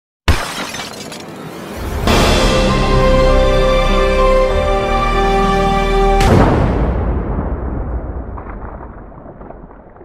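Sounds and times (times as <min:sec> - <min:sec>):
glass shattering: 0:00.3 - 0:01.6
intro music: 0:01.8 - 0:06.6.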